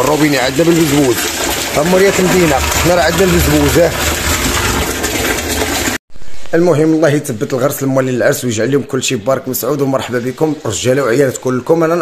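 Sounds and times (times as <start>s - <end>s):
water pouring into plastic barrel: 0.0s - 6.0s.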